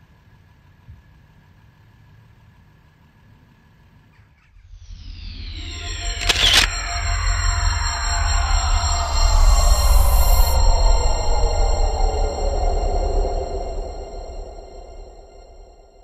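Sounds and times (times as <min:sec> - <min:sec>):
falling synth sweeps: 0:04.5 - 0:16.0
deep bass swells: 0:04.6 - 0:16.0.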